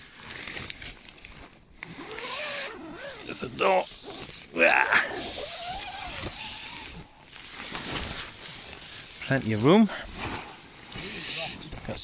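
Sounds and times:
tent zipper rasp: 0:01.8 - 0:11.8.

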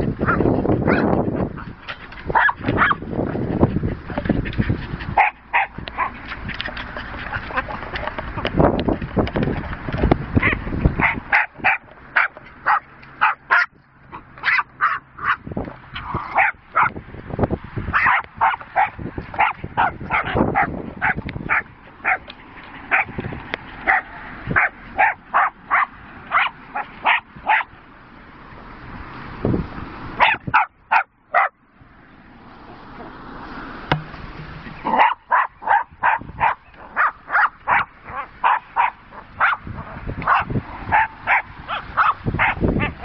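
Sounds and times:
dog yapping barks: 0:02.3 - 0:03.0, 0:05.2 - 0:06.2, 0:10.4 - 0:13.7, 0:14.4 - 0:15.4, 0:16.2 - 0:17.0, 0:17.9 - 0:22.3, 0:22.9 - 0:23.2, 0:23.8 - 0:27.7, 0:30.2 - 0:31.6, 0:34.8 - 0:43.0.

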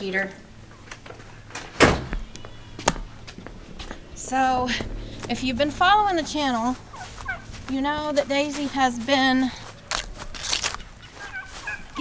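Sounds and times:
door shutting with a thud: 0:01.5 - 0:02.3.

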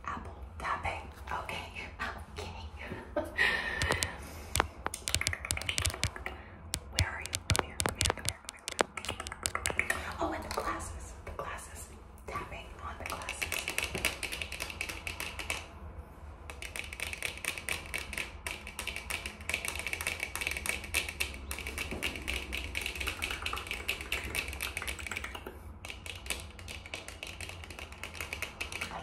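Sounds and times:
fingernail tapping: 0:03.8 - 0:10.0.

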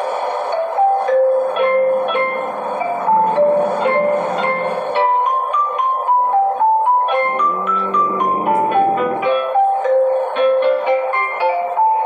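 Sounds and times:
simple background melody: 0:00.4 - 0:12.0.

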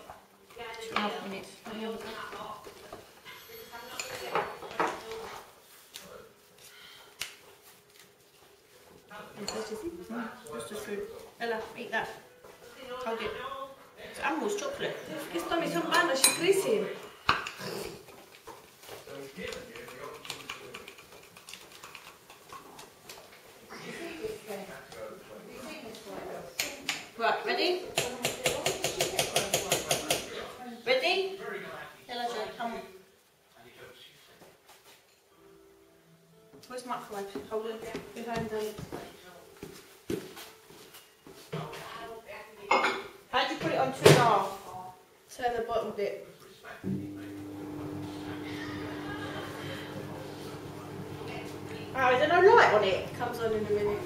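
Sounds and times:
metal spoons clinking and scraping: 0:03.3 - 0:04.4, 0:15.9 - 0:16.6.

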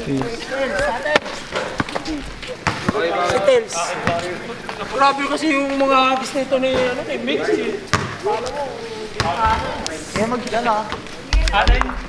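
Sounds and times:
people talking and laughing: 0:00.0 - 0:12.0.

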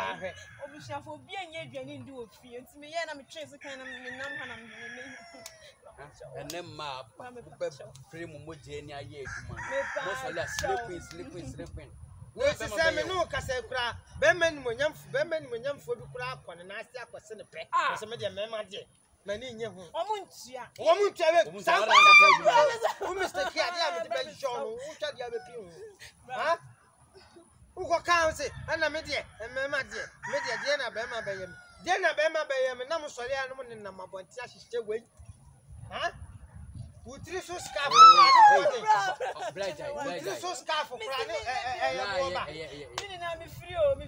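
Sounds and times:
rooster crowing: 0:00.0 - 0:01.0, 0:03.6 - 0:05.8, 0:09.2 - 0:11.4, 0:29.4 - 0:32.1, 0:37.8 - 0:38.8
people talking: 0:37.2 - 0:44.0.

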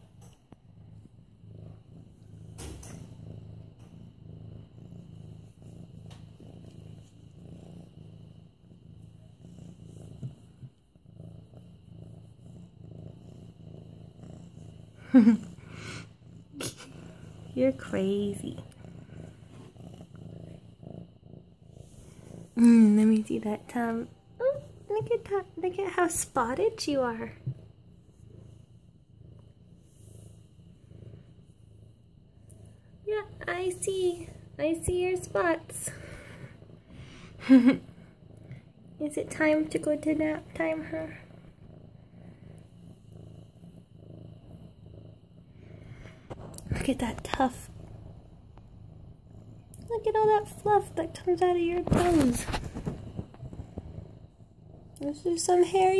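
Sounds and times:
kitten purring: 0:00.0 - 0:55.9.

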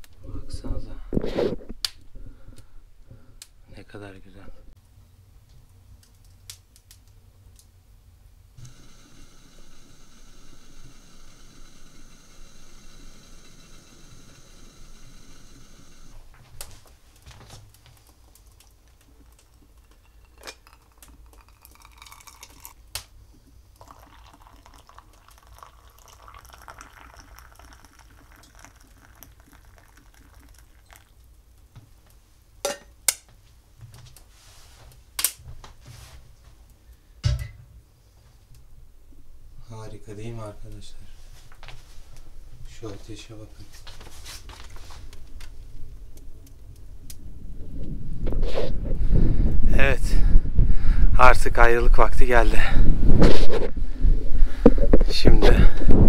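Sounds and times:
wood fire crackling: 0:04.8 - 0:37.2, 0:38.2 - 0:56.0
steady hiss: 0:08.5 - 0:17.9
hot drink pouring into mug: 0:08.6 - 0:16.2, 0:18.0 - 0:22.8, 0:23.7 - 0:31.6.

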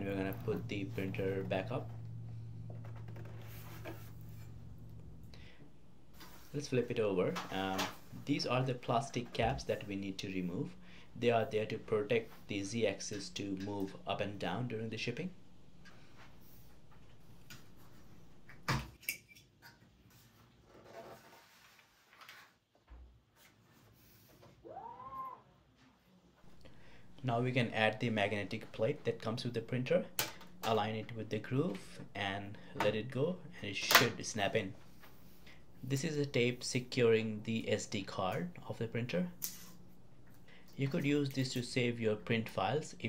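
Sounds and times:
steady low hum: 0:00.0 - 0:18.7, 0:26.4 - 0:43.0.

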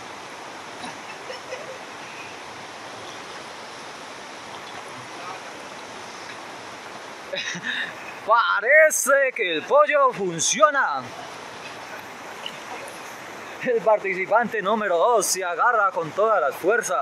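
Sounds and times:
river water flowing: 0:00.0 - 0:17.0.

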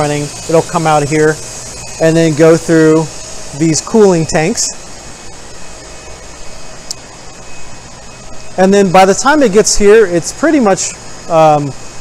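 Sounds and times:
faint steady tones: 0:00.0 - 0:11.9
ventilation and equipment hum: 0:00.0 - 0:12.0.

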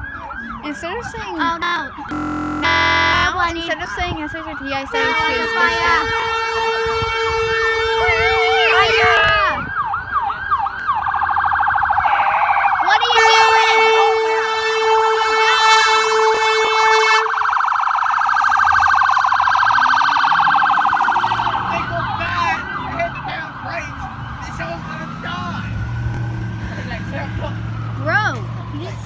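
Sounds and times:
fire truck siren: 0:00.0 - 0:00.8, 0:01.5 - 0:03.6, 0:05.0 - 0:29.0
fire truck horn blast: 0:02.1 - 0:03.4, 0:04.9 - 0:09.2, 0:12.0 - 0:17.3.

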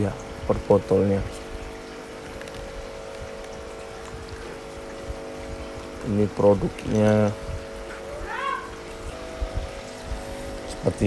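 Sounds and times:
faint running water: 0:00.0 - 0:11.0
steady background hum with tones: 0:00.0 - 0:11.0.

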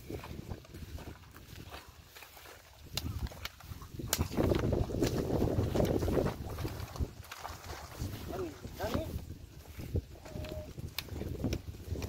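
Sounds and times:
wind rushing over microphone: 0:00.0 - 0:01.7, 0:02.8 - 0:12.0
cart moving along muddy track: 0:00.0 - 0:12.0.

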